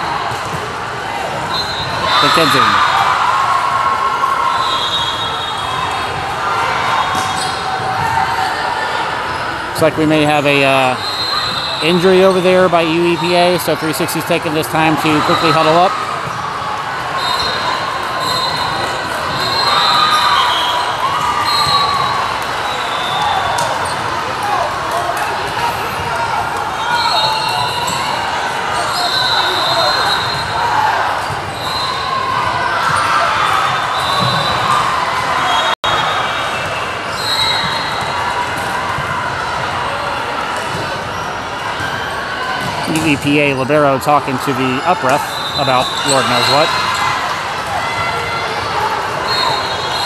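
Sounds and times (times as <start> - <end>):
many people talking: 0.0 - 50.0.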